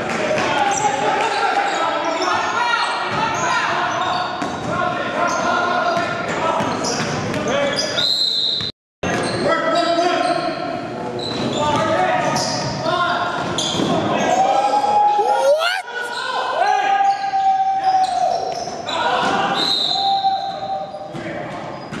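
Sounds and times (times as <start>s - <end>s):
players' raised voices: 15.0s - 16.2s.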